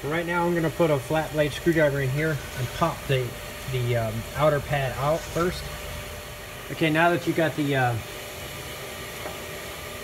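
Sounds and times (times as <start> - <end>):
steady hiss and hum: 0.0 - 10.0.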